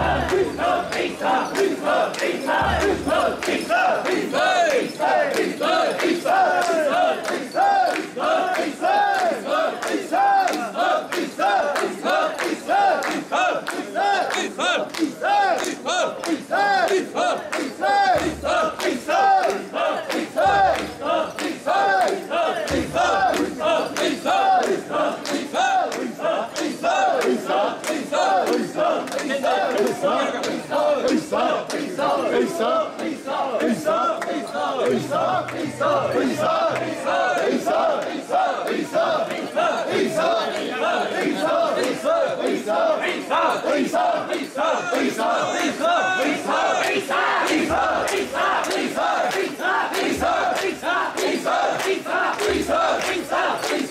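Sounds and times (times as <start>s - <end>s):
crowd chanting in unison: 0.0s - 53.9s.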